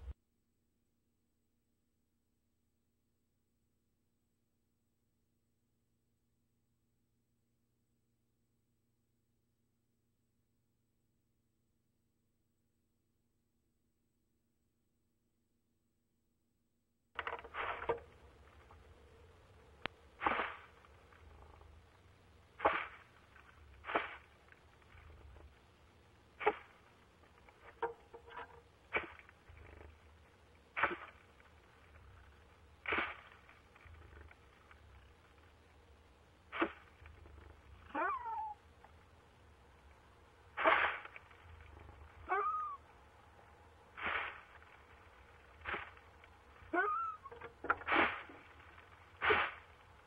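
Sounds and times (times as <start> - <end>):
owl raspy calls: 37.9 - 38.6, 42.2 - 42.9, 46.7 - 47.4.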